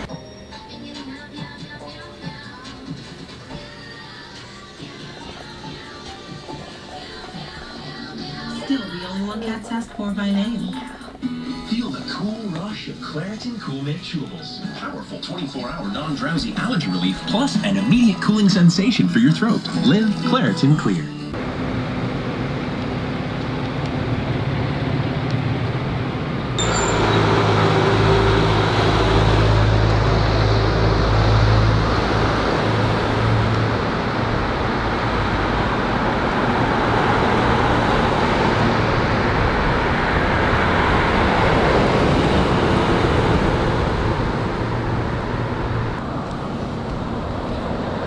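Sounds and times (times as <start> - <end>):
road traffic noise: 0.0 - 0.7, 11.2 - 48.0
vehicle low rumble: 21.4 - 48.0.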